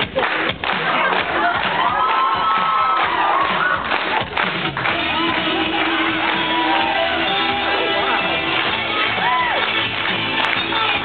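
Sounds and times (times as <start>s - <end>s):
music: 0.0s - 11.0s
crowd cheering and shouting: 0.1s - 11.0s.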